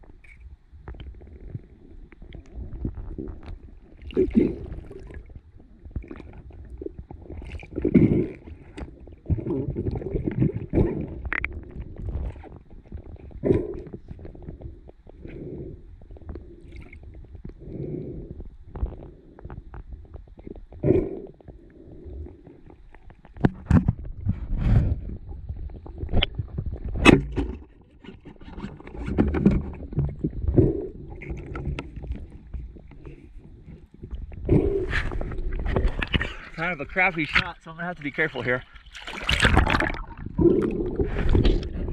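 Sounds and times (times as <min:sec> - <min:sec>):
muffled underwater sloshing: 0:00.0 - 0:41.9.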